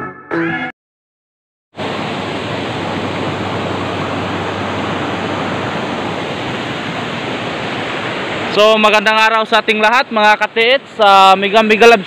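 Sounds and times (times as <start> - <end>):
water rushing over rock: 1.8 - 12.0.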